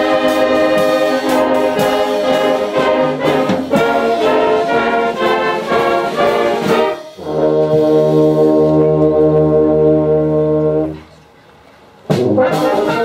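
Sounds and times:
concert band with brass playing: 0.0s - 11.1s, 12.0s - 13.0s.

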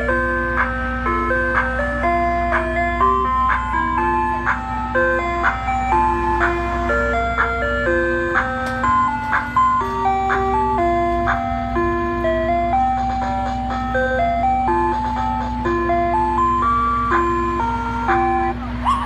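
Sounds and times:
ice cream truck music chime: 0.0s - 19.0s.

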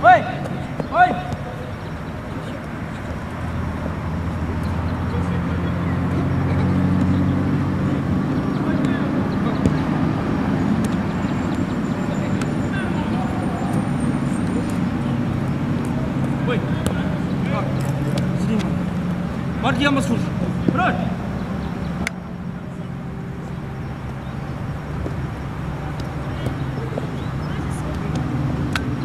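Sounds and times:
vehicle engine running: 0.0s - 29.0s.

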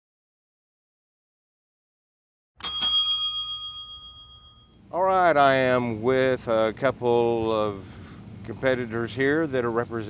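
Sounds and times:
bell ringing: 2.6s - 4.8s.

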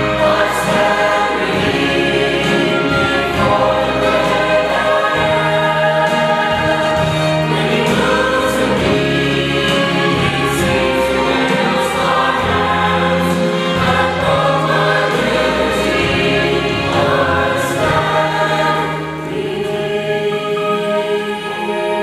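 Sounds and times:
choir singing gospel: 0.0s - 22.0s.

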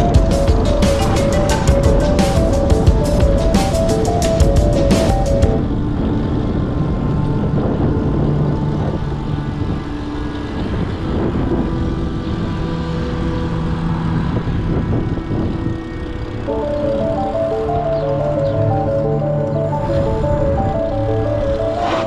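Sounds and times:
background music: 0.0s - 22.0s
bicycle tyres rolling on tarmac: 0.0s - 22.0s
wind rushing over microphone: 0.0s - 22.0s.

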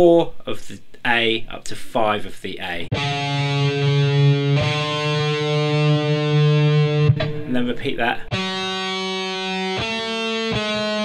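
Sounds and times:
distorted electric guitar note: 2.9s - 11.0s.

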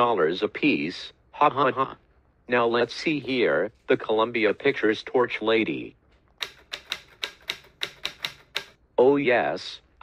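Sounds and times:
computer keyboard typing: 6.4s - 8.8s.

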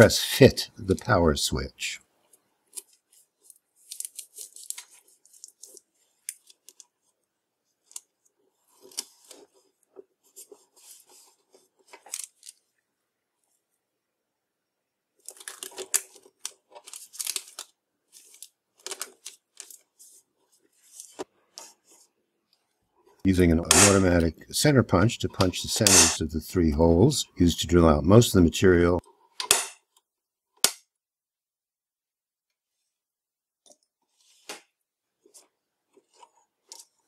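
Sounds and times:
paper rustling: 2.7s - 7.1s, 7.8s - 12.7s, 15.2s - 24.2s.

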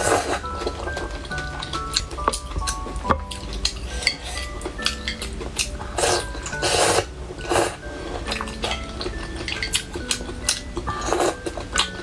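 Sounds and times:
wet chewing: 0.0s - 12.0s.

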